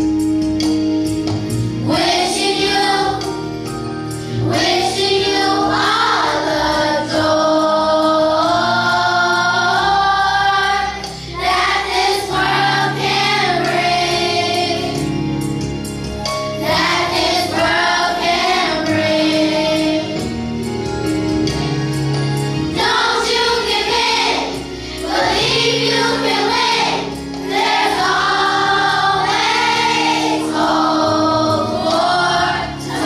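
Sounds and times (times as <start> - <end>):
children's choir singing: 1.8 - 3.7, 4.4 - 15.2, 16.6 - 20.4, 22.7 - 33.0.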